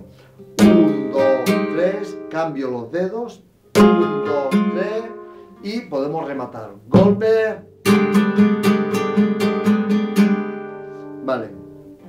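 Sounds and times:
flamenco guitar strumming: 0:00.0 - 0:02.9, 0:03.6 - 0:12.0.

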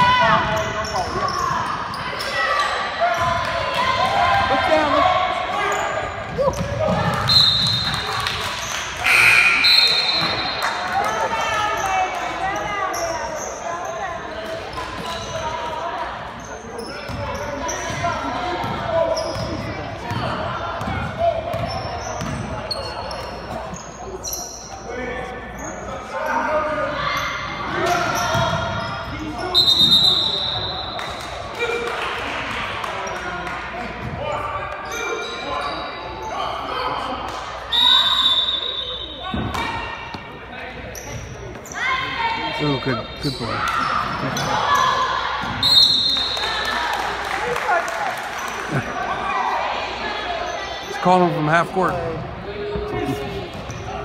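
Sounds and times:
spectators talking: 0:00.0 - 0:31.6, 0:32.3 - 0:54.0.

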